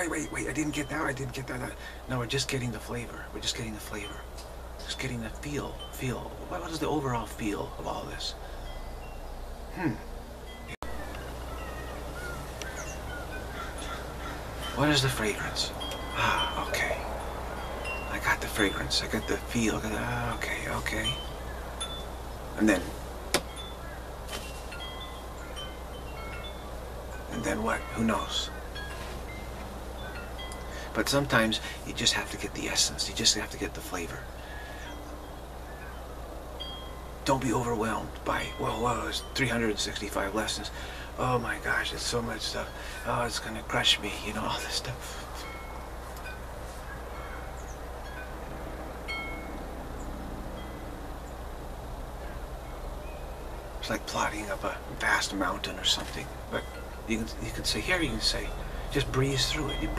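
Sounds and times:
high ringing chimes: 0.0s - 59.9s
steady low hum: 0.0s - 59.9s.

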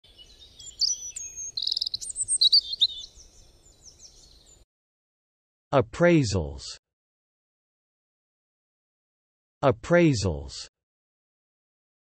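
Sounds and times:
songbirds chirping and trilling: 0.0s - 4.7s.

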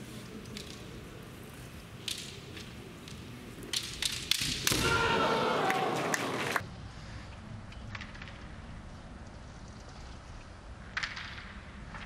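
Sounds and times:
bamboo swords clacking: 0.0s - 1.2s, 1.8s - 5.8s
long loud shout: 4.7s - 6.6s.

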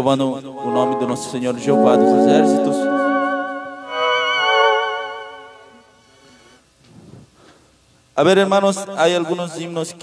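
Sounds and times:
electronic keyboard chords: 0.6s - 5.8s.

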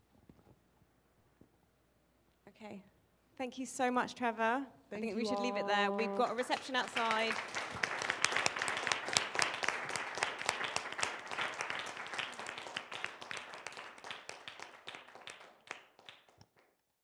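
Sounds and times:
audience applauding: 5.8s - 16.7s.

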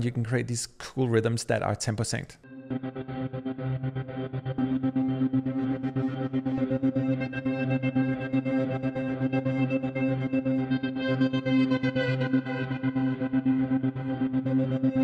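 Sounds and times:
pulsing distorted guitar pad: 2.5s - 15.0s.

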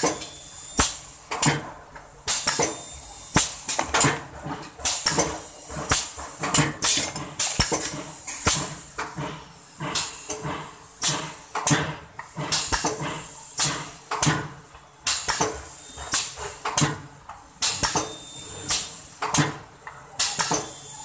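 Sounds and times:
packing machine clacking: 0.0s - 21.0s.

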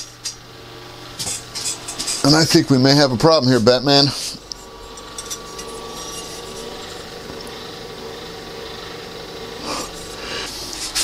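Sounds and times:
steady shop hum: 0.0s - 11.0s.

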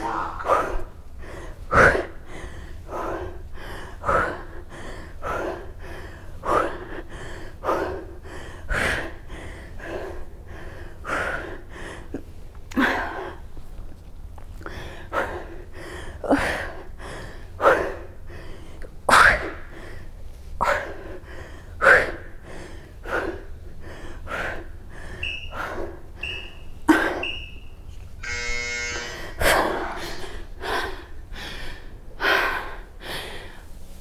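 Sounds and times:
short high beeps: 25.2s - 25.6s, 26.2s - 29.2s
timer buzzing tone: 25.2s - 29.5s.

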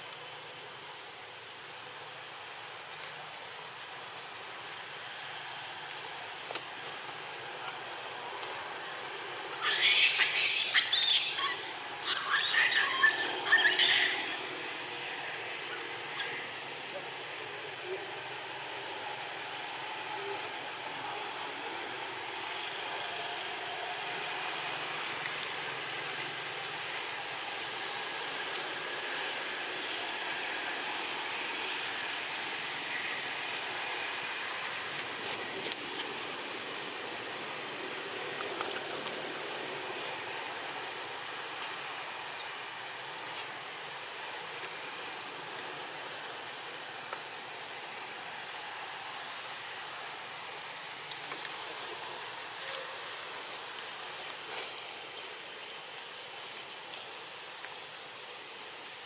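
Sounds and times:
quiet forest background: 0.0s - 59.0s
monkeys screeching: 9.6s - 14.7s, 16.1s - 16.5s.

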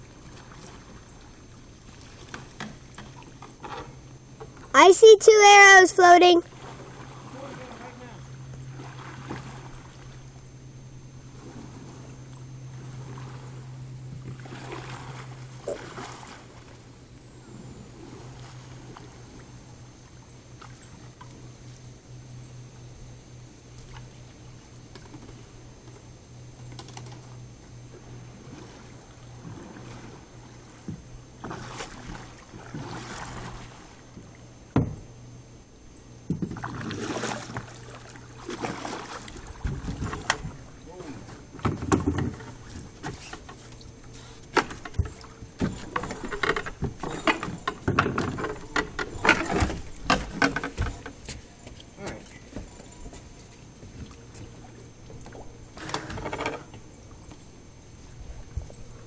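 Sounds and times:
canoe paddle strokes: 0.0s - 21.8s, 23.7s - 35.2s, 36.2s - 59.0s
canoe knocking against dock: 30.8s - 35.1s, 36.3s - 37.7s, 38.4s - 43.6s, 44.5s - 52.8s, 55.8s - 56.9s.

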